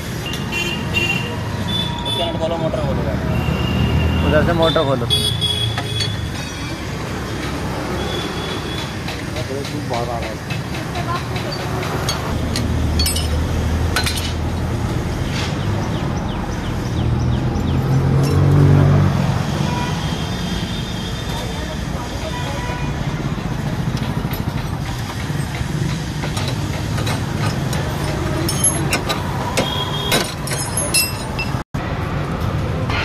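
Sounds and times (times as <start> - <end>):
road traffic rumble: 0.0 - 33.0
motor vehicle passing: 11.8 - 19.6
metallic clinks of hand tools: 30.3 - 31.6.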